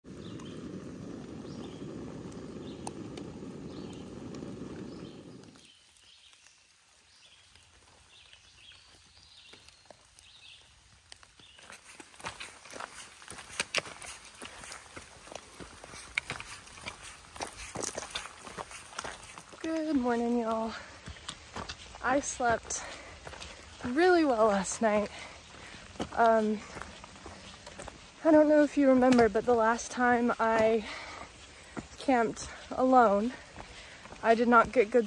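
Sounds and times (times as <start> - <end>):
stove burning with low roar: 0.0 - 6.4, 7.5 - 35.0
footsteps on rocky dirt trail: 4.5 - 35.0.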